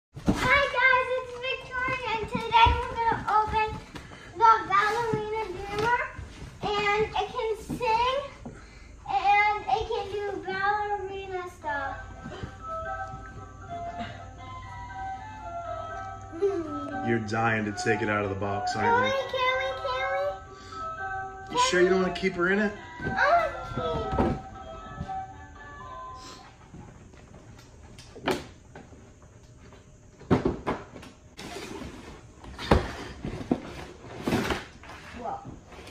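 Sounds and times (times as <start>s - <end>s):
girl singing wordless tune: 0.4s - 14.8s, 16.2s - 21.7s, 22.8s - 25.6s.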